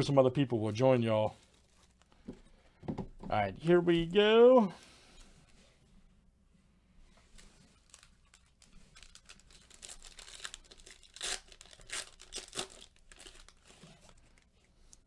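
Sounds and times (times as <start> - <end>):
foil wrapper crinkling: 7.3 - 15.0
foil wrapper ripping: 7.4 - 14.4.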